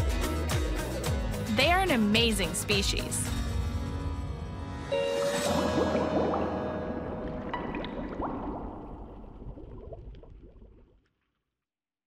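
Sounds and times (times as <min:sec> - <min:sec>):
bubbles gurgling: 0:05.2 - 0:11.3.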